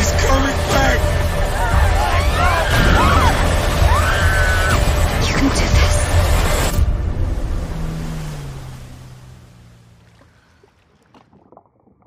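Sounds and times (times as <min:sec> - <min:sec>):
low droning tone: 0:00.0 - 0:10.7.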